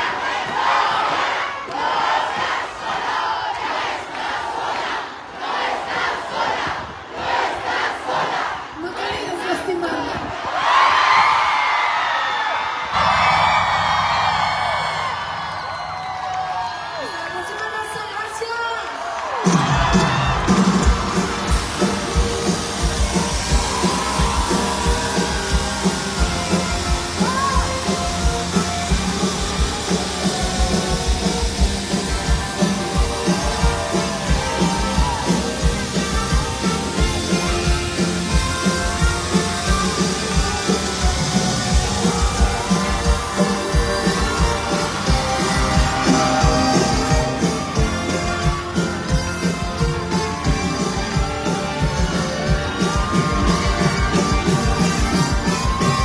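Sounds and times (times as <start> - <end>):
electric guitar: 19.4 - 56.0
live pop-rock band music: 19.4 - 56.0.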